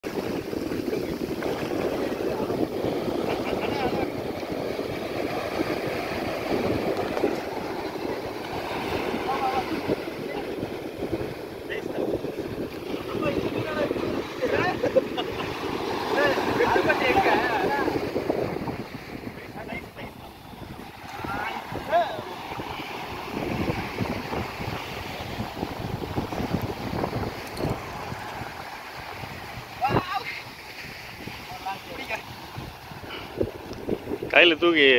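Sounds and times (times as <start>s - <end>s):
surf waves breaking on sand: 0.0s - 34.9s
wind buffeting microphone: 0.0s - 34.9s.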